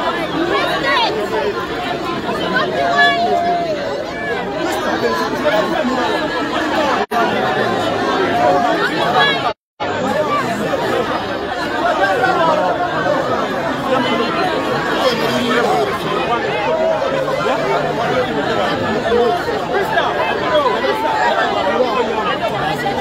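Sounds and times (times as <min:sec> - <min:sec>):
crowd talking outdoors: 0:00.0 - 0:23.0.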